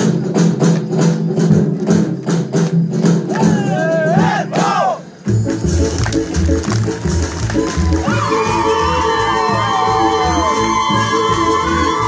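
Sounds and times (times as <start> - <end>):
folk dance music: 0.0 - 12.0
dancers shouting: 3.3 - 5.0, 7.6 - 12.0.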